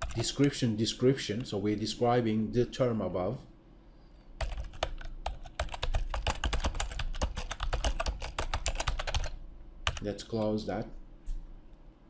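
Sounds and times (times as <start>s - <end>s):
typing on computer keyboard: 0.0s - 0.3s, 4.4s - 10.5s.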